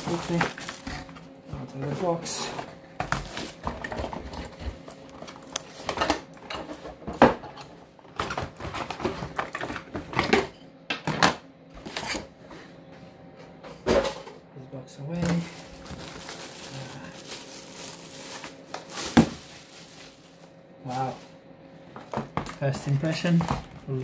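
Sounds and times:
packaging rustling: 0:00.0 - 0:02.4, 0:03.1 - 0:06.0, 0:15.2 - 0:21.4.

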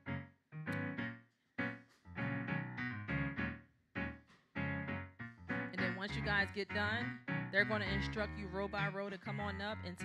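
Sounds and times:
piano keyboard slow chords: 0:00.0 - 0:10.0.

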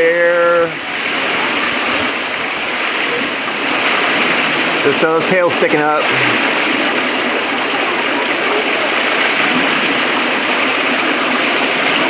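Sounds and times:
waterfall pouring over rocks: 0:00.0 - 0:12.0.

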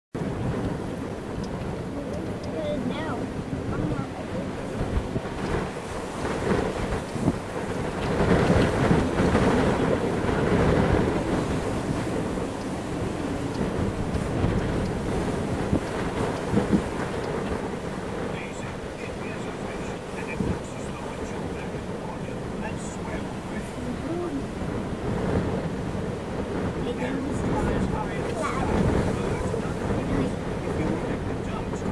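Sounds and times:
gusty wind buffeting microphone: 0:00.2 - 0:31.9.

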